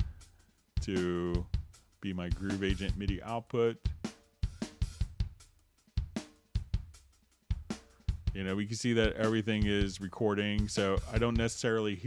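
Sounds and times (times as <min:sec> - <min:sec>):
drum kit funk pattern: 0:00.0 - 0:12.0.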